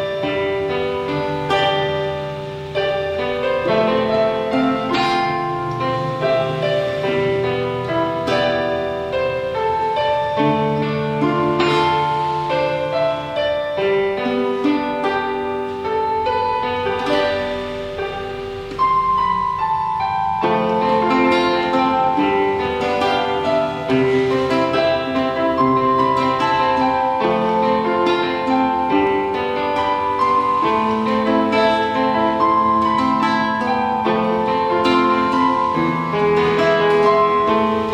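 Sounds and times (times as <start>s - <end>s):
acoustic guitar: 0.0s - 37.9s
keyboard playing piano sound: 0.0s - 37.9s.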